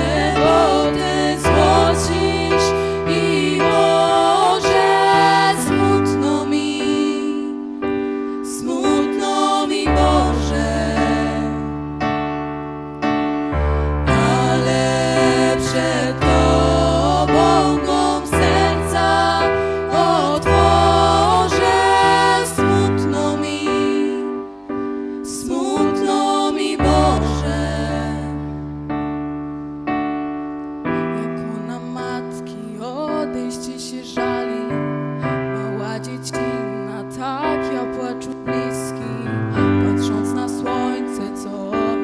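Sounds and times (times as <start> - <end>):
keyboard piano-like chords: 0.0 - 42.0.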